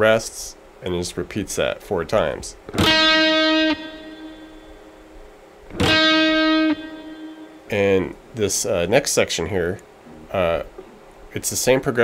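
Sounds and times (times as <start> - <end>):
electric guitar single note: 2.7 - 5.1, 5.7 - 8.2.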